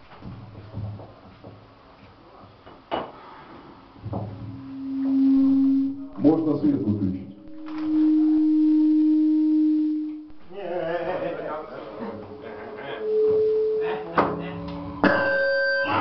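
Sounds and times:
steady pure electronic tone: 0:04.0 - 0:16.0
harsh electronic chord: 0:04.6 - 0:11.6.

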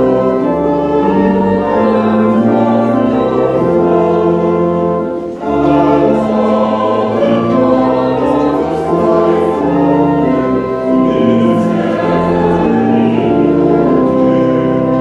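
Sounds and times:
congregation singing a hymn: 0:00.0 - 0:15.0
organ accompaniment: 0:00.0 - 0:15.0.

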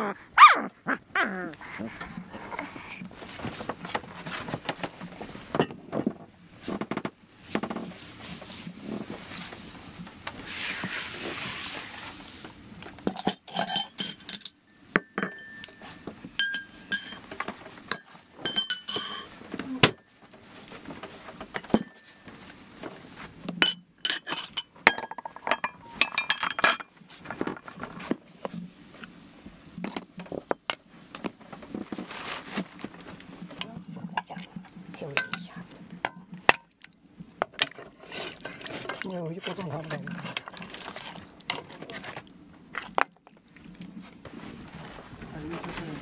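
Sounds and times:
ladle and dishes clinking: 0:13.1 - 0:17.3, 0:17.9 - 0:19.4, 0:23.6 - 0:26.9, 0:35.1 - 0:35.5
ladle scraping metal pot: 0:37.5 - 0:42.3.

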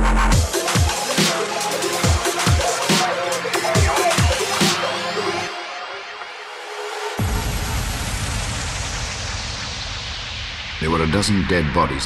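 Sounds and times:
hiss over deep low rumble: 0:07.2 - 0:12.0.

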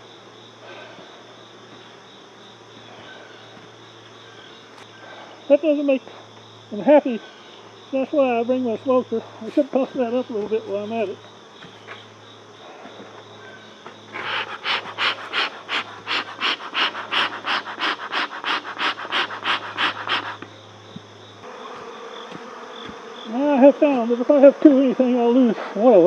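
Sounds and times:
bellows puffing air: 0:14.1 - 0:20.5.

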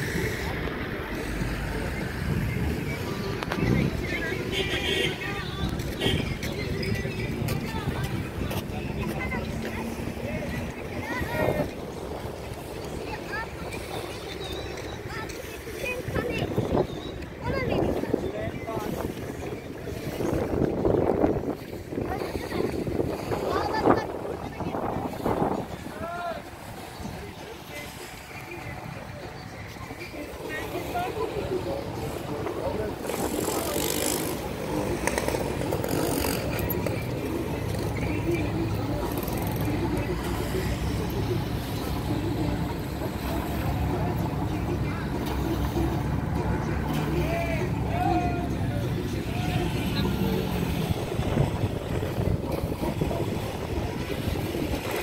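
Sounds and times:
harbour ambience: 0:00.0 - 0:55.0
people talking: 0:00.0 - 0:55.0
wind noise on microphone: 0:00.0 - 0:55.0.

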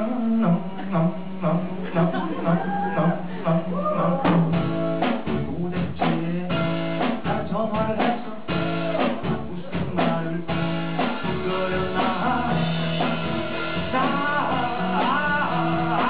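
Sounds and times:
acoustic guitar: 0:00.0 - 0:16.0
drum kit: 0:00.0 - 0:16.0
person singing: 0:00.0 - 0:16.0.

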